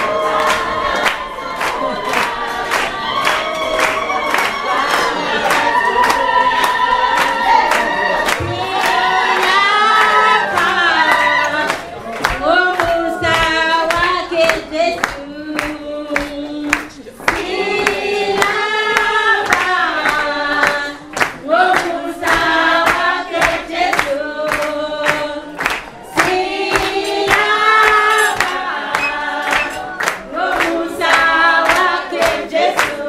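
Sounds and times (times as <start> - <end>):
hands clapping a beat: 0.0 - 33.0
voices singing along: 0.0 - 33.0
woman singing into microphone: 5.4 - 33.0.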